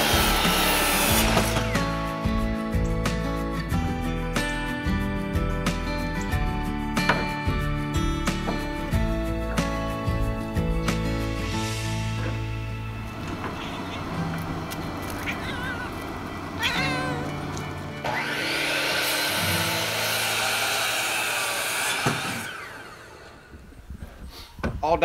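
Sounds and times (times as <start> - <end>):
miter saw cutting board: 0.0 - 1.9, 18.0 - 23.6
background music: 0.0 - 22.9
wavering animal cries: 14.9 - 17.5.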